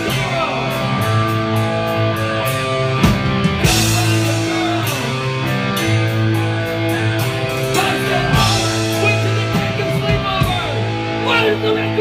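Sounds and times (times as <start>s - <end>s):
distorted electric guitars: 0.0s - 12.0s
drums and cymbals: 0.0s - 12.0s
punk rock band playing: 0.0s - 12.0s.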